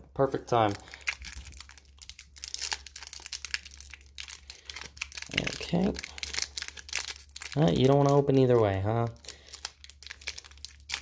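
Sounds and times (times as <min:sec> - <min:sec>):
foil wrapper crinkling: 0:00.3 - 0:11.0.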